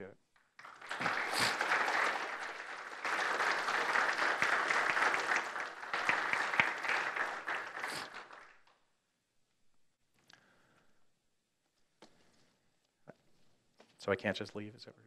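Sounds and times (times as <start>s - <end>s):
audience applauding: 0.6s - 8.8s.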